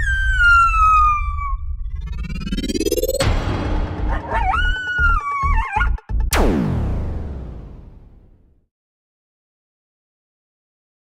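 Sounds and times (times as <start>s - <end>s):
deep rumbling bass: 0.0s - 8.3s.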